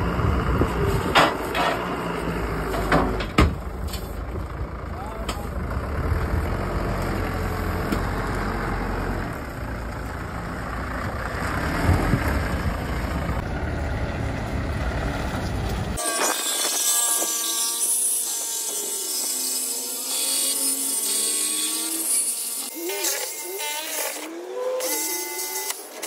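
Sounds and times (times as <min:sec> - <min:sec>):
forklift engine running: 0:00.0 - 0:16.0.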